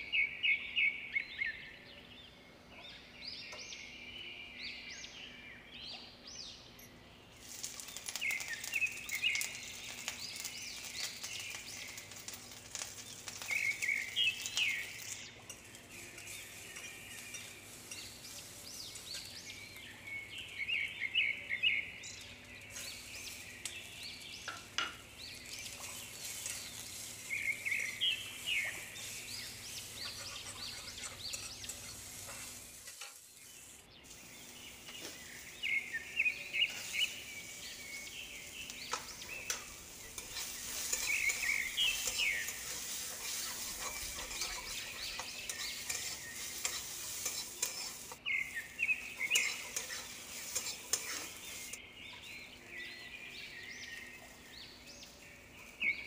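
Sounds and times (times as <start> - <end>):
onions sizzling frying: 7.3 - 56.0
steel spatula scraping a pan: 7.4 - 19.8, 22.6 - 24.3, 25.2 - 51.8.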